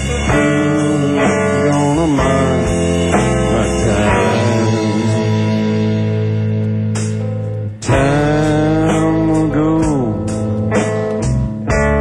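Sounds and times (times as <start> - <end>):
live band guitar music: 0.0 - 12.0.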